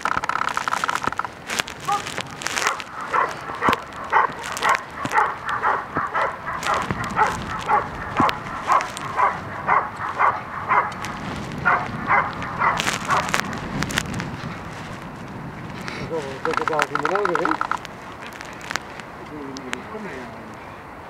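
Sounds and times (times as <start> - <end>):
dog barking: 1.9 - 11.0, 11.6 - 13.4.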